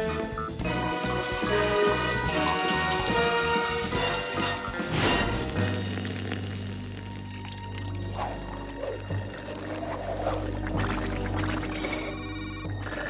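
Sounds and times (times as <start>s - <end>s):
background music: 0.0s - 13.0s
cartoon liquid gurgling: 5.5s - 12.1s.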